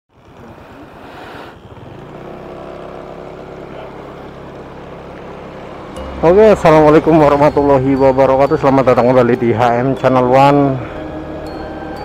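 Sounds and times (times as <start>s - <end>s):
small engine running: 0.1s - 12.0s.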